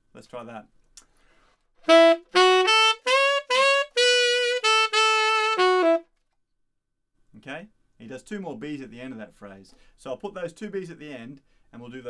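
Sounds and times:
tenor saxophone rock phrase: 1.8s - 6.1s.

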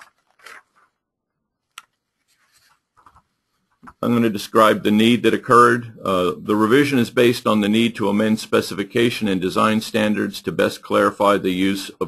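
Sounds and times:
faint soft rustles: 2.0s - 4.0s
person speaking: 3.8s - 12.0s.

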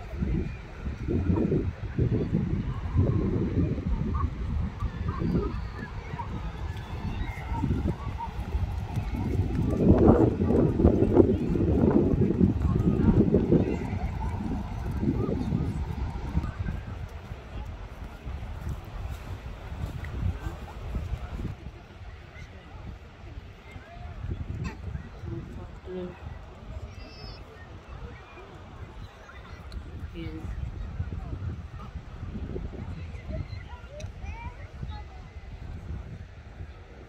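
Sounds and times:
faint beach ambience: 0.0s - 37.0s
wind buffeting microphone: 0.0s - 37.0s.

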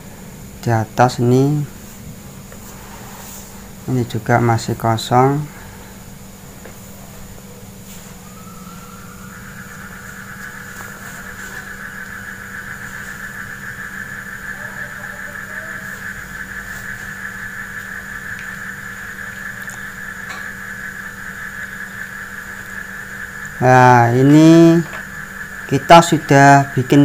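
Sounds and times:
high-pitched mechanical whine: 0.0s - 27.0s
low hum: 0.0s - 27.0s.

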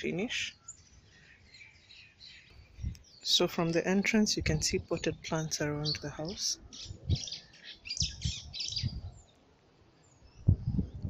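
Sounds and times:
faint birds chirping: 0.0s - 11.0s.

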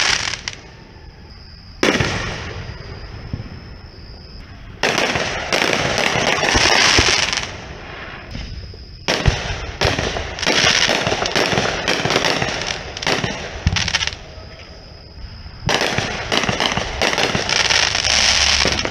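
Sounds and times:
fireworks bursting: 0.0s - 18.9s.

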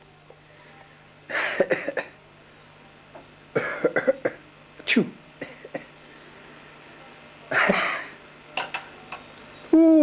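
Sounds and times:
faint steady hum: 0.0s - 10.0s
man coughing harshly: 1.4s - 2.2s, 3.6s - 4.4s.

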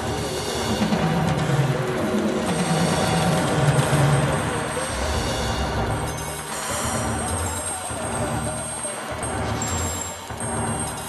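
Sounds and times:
noisy synthesizer texture: 2.9s - 8.6s
wavering low drone: 4.2s - 7.6s.

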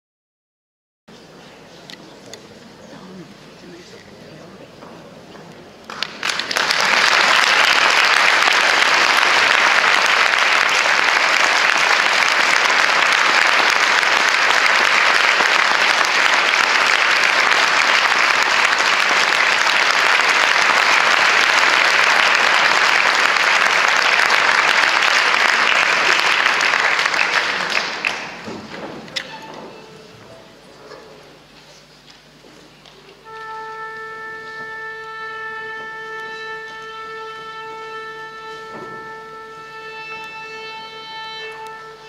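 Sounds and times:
audience applauding: 5.9s - 28.7s.

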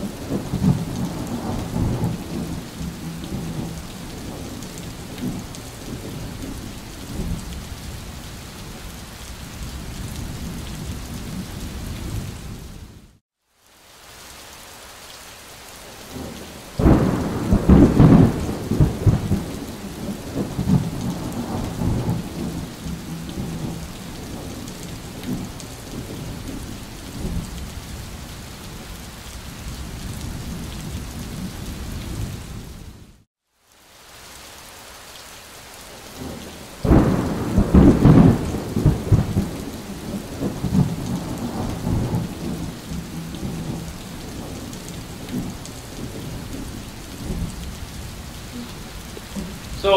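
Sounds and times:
thunder rumbling: 0.0s - 7.5s, 16.1s - 26.6s, 36.8s - 49.9s
steady rain: 0.0s - 49.9s.

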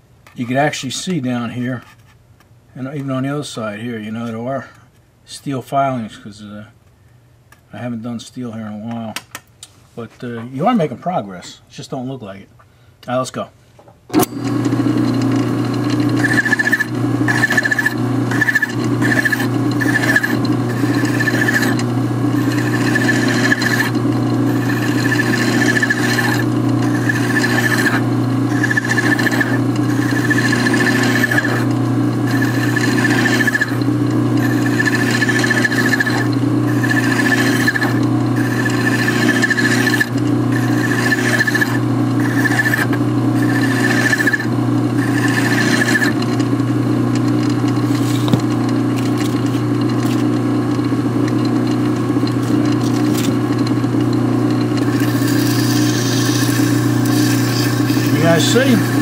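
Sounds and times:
metal lathe running: 14.2s - 59.0s
file squealing on spinning metal: 16.0s - 46.2s, 54.8s - 59.0s.

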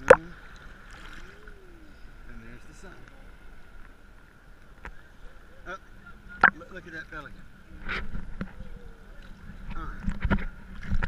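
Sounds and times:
sea water sloshing and splashing: 0.0s - 5.5s.

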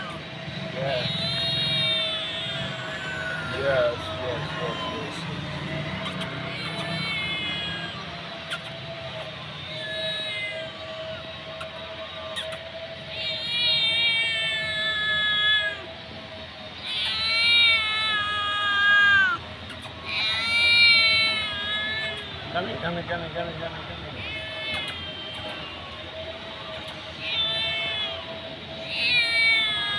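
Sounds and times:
kitten meowing: 0.9s - 5.2s, 6.0s - 8.8s, 9.7s - 11.0s, 13.2s - 15.8s, 16.8s - 22.3s, 24.2s - 25.8s, 26.6s - 28.2s, 28.8s - 29.9s.

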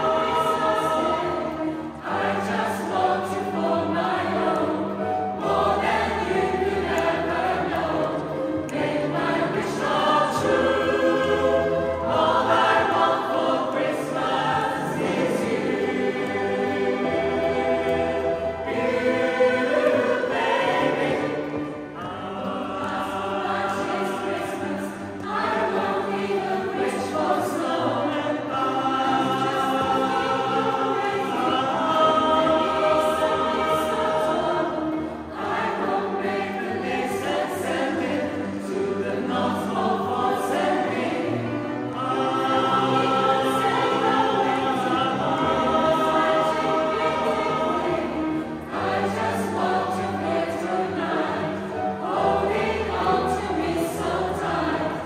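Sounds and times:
mixed choir singing in harmony: 0.0s - 55.0s.

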